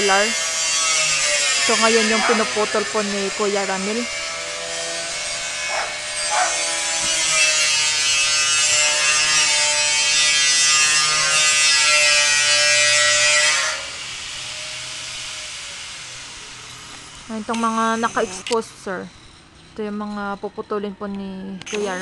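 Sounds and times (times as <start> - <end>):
motor whine winding down: 0.0 - 9.6, 10.3 - 22.0
cut-off grinder cutting metal: 0.0 - 20.3, 21.6 - 22.0.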